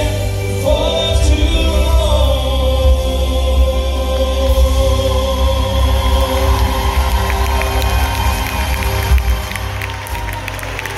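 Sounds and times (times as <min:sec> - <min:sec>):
audience cheering and clapping: 0:04.6 - 0:10.9.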